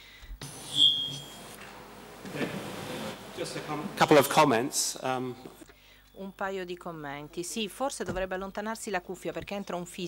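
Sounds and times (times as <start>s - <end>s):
microphone hiss: 0.0s - 10.0s
high-pitched feedback whistle: 0.4s - 1.6s.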